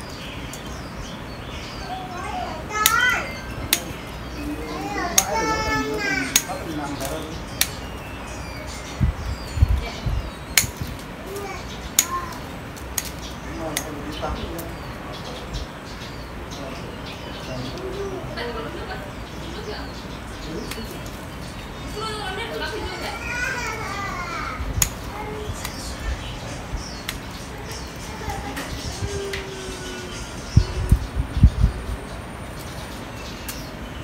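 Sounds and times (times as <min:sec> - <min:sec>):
child calling: 0:01.8 - 0:03.6, 0:04.4 - 0:06.6, 0:11.2 - 0:12.5, 0:22.0 - 0:26.0, 0:27.5 - 0:31.0
scissors snipping branch: 0:06.3 - 0:07.9, 0:10.5 - 0:13.9, 0:20.6 - 0:21.1, 0:24.8 - 0:25.8.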